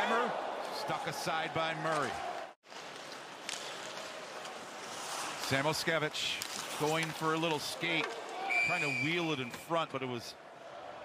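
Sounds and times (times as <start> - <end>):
crowd and rink noise: 0.0 - 11.0.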